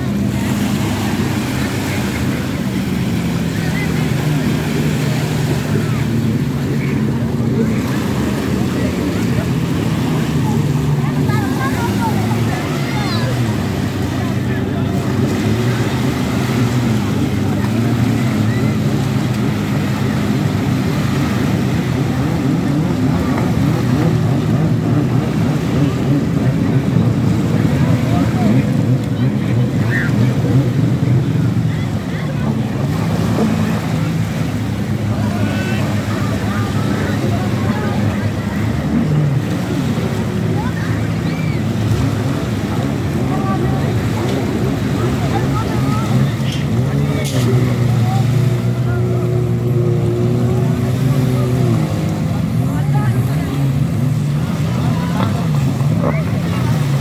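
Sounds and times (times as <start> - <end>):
jet ski engine drone: 0.0 - 57.0
surf washing on shore: 0.0 - 57.0
people calling out: 40.4 - 52.0.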